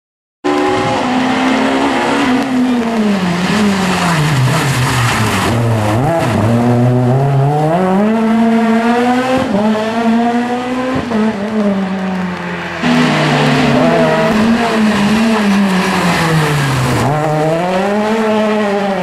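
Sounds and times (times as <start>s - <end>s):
rally car engine at high revs: 0.4s - 19.0s.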